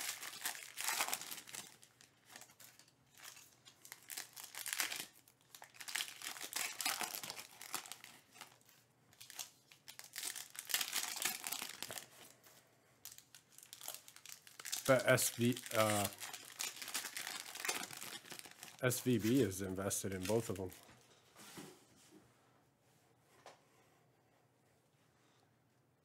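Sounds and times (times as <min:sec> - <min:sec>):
foil wrappers crinkling: 0:00.0 - 0:20.8.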